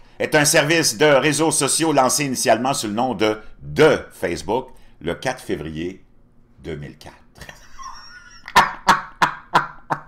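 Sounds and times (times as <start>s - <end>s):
man laughing heartily: 7.4s - 10.0s.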